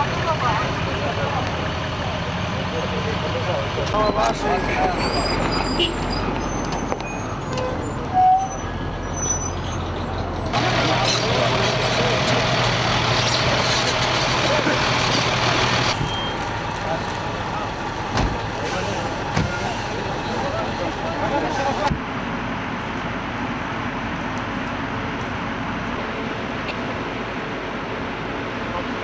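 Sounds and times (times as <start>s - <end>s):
voices: 0.0s - 22.0s
heavy vehicle engines running: 0.0s - 29.0s.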